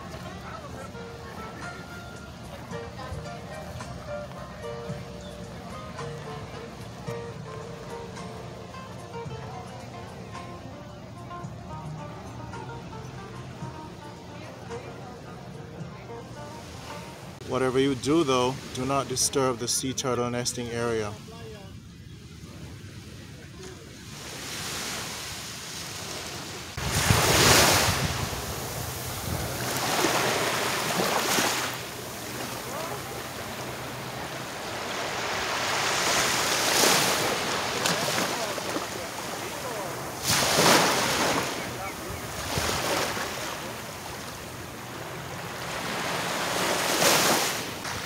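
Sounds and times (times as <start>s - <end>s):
small waves breaking on beach: 22.3s - 48.0s
wind on microphone: 26.8s - 29.8s.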